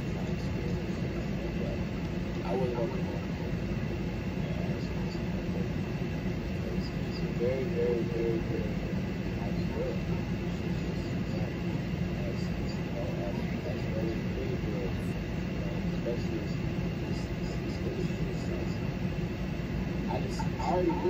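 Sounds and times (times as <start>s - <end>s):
faint talking: 0.0s - 21.0s.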